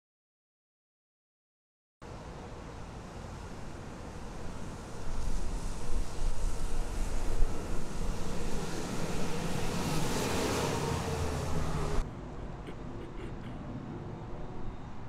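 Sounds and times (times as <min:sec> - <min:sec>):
vehicle driving past: 0:06.4 - 0:12.1.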